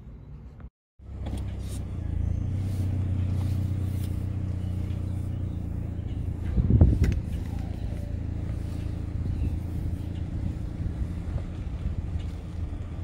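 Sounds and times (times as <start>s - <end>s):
car engine humming: 0.0s - 13.0s.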